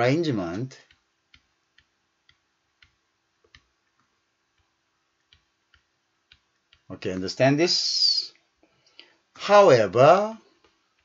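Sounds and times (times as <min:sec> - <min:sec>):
stylus tapping pen tablet: 0:00.8 - 0:07.0.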